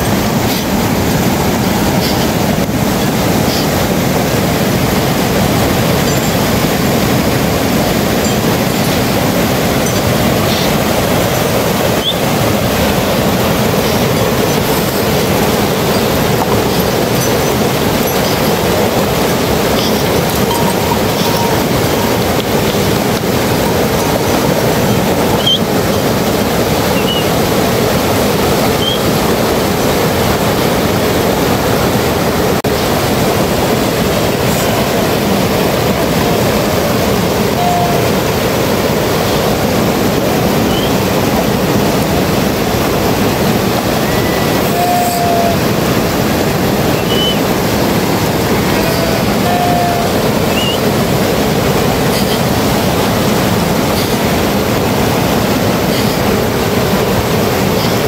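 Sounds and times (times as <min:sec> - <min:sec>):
stream rushing over rocks: 0:00.0 - 0:58.0.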